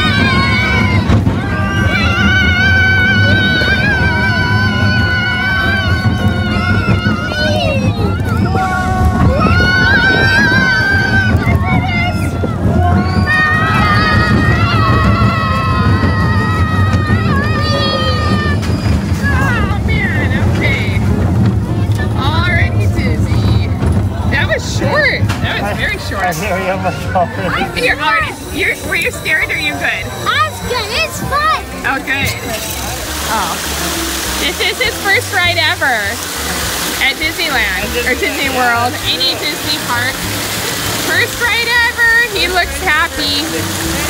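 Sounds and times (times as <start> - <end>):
wind on microphone: 0.0 - 25.2
roller coaster train rumbling: 0.0 - 44.0.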